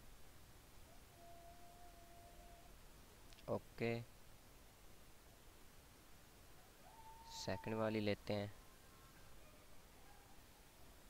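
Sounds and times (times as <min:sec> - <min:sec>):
faint steady pure tone: 0:00.0 - 0:11.0.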